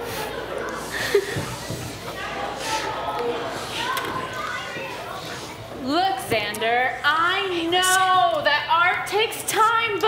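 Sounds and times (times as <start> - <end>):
children's voices chattering: 0.0 - 10.0.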